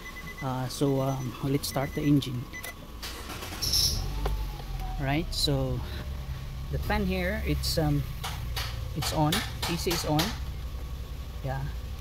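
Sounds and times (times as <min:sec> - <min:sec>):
car engine idling: 0:00.0 - 0:12.0
engine starting squeak: 0:02.6 - 0:04.3.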